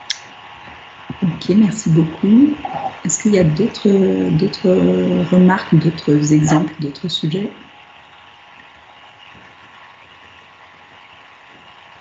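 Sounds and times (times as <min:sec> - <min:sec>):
faint hum: 0:00.0 - 0:08.1
microphone hiss: 0:00.0 - 0:12.0.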